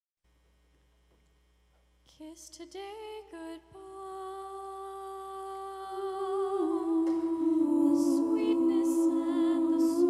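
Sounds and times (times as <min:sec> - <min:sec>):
women humming a cappella: 0:02.1 - 0:10.0.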